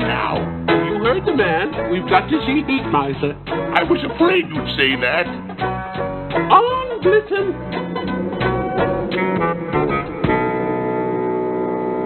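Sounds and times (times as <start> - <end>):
ringing music chord: 7.5 - 12.0.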